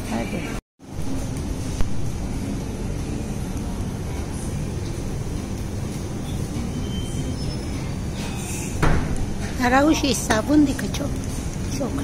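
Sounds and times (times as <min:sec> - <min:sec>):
low shop rumble: 0:00.0 - 0:12.0.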